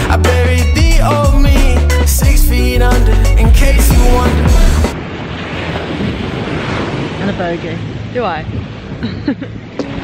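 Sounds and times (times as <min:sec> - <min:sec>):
sea surf: 0:02.9 - 0:10.0
wind buffeting microphone: 0:04.1 - 0:10.0.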